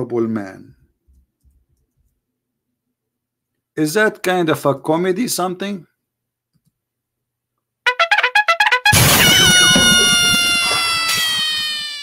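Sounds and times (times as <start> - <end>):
trumpet-like note sliding down: 7.9 - 10.8.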